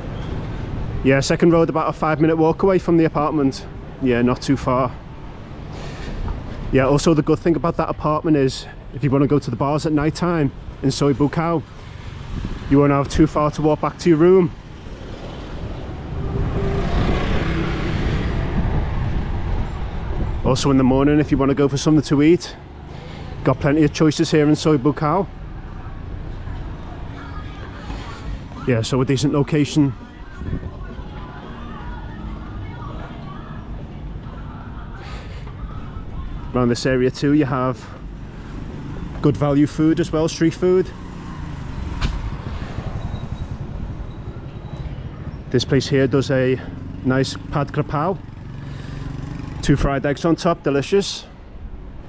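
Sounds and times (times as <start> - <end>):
street rumble: 0.0 - 52.0
motor scooter passing: 14.5 - 19.4.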